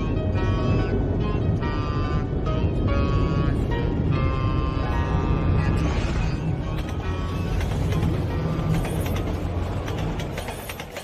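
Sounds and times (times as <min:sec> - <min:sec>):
low rumble: 0:00.0 - 0:10.2.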